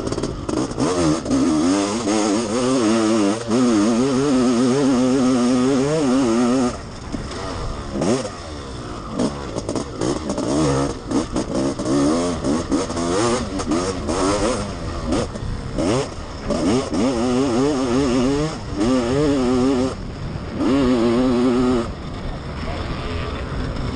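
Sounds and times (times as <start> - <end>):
two-stroke motorcycle engine revving: 0.0 - 23.9.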